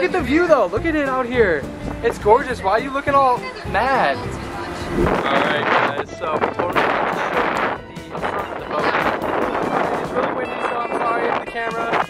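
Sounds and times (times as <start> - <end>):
background music: 0.0 - 12.0
wind buffeting microphone: 1.2 - 12.0.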